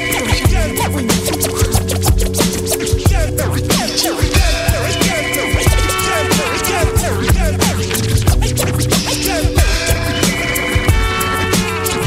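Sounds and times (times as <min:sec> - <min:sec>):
hip hop beat: 0:00.0 - 0:12.0
turntable scratching: 0:00.0 - 0:12.0.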